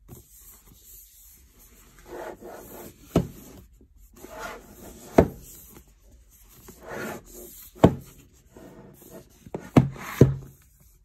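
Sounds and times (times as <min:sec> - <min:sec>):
cardboard box sliding on desk: 0:01.9 - 0:05.7, 0:06.6 - 0:10.5.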